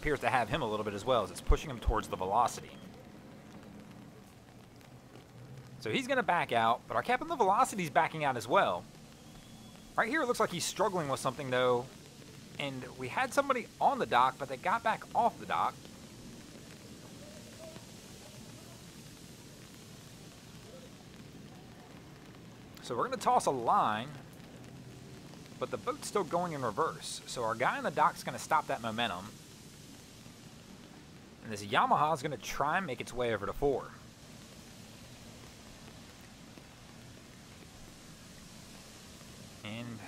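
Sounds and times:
rain falling on water: 0.0s - 40.0s
faint distant voices: 8.8s - 23.4s.

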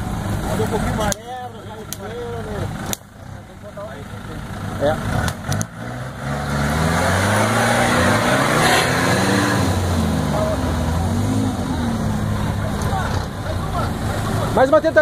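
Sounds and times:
engine revving under load: 4.3s - 14.8s.

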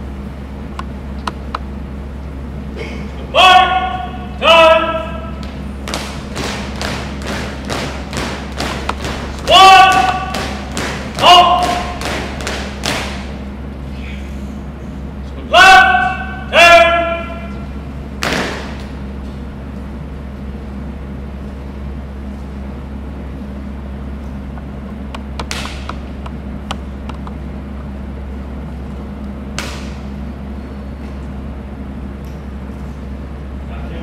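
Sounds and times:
rifle slap and boot stamp: 18.2s - 18.9s.

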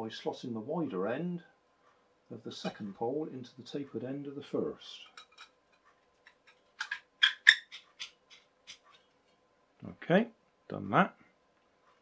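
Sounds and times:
metal poles clicking together: 6.3s - 9.1s.

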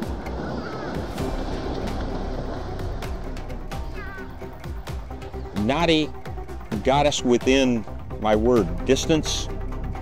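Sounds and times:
hippopotamuses splashing through water: 0.0s - 4.0s.

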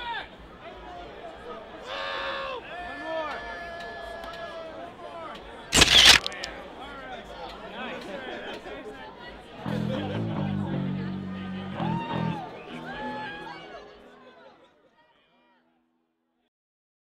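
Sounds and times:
group chatter and laughing: 5.7s - 15.2s
camera shutter snap: 5.8s - 6.5s
music: 9.6s - 14.4s.

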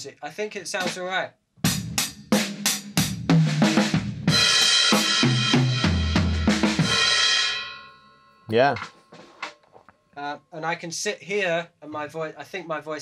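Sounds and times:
drum strikes and tom hits: 1.7s - 7.6s
cymbals ringing: 6.8s - 9.5s.

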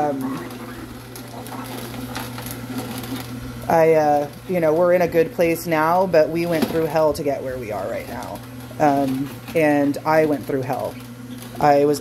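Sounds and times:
juicer motor humming: 0.0s - 12.0s.

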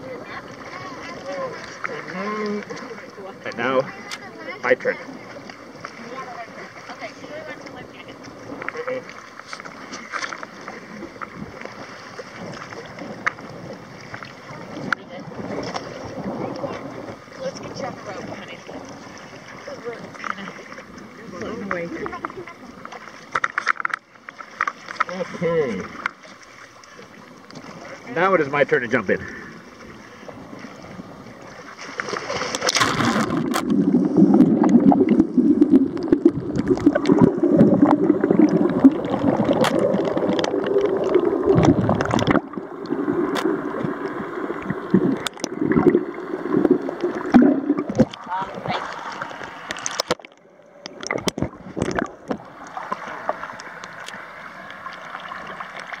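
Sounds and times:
muffled underwater bubbling: 0.0s - 23.2s, 29.0s - 56.0s
water sloshing: 0.0s - 56.0s
small underwater clicks: 8.5s - 11.8s, 12.4s - 15.0s, 21.6s - 25.2s, 25.8s - 27.8s, 31.9s - 56.0s
splash into water: 31.6s - 42.6s.

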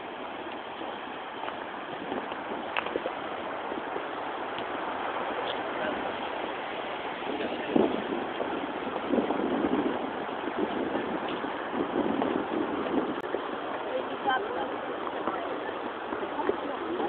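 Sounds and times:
sea surf: 0.0s - 17.0s
wind: 0.0s - 17.0s
people talking indistinctly: 13.8s - 17.0s.

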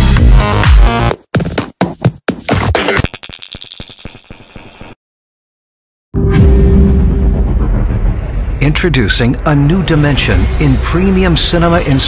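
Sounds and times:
electronic music: 0.0s - 1.6s, 2.4s - 4.4s.

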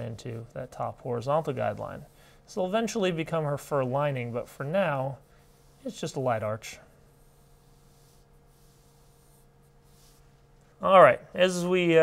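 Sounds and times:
man talking: 0.0s - 5.2s, 5.8s - 6.8s, 10.8s - 12.0s
pencil scratching on paper: 1.2s - 2.2s, 2.8s - 10.4s.

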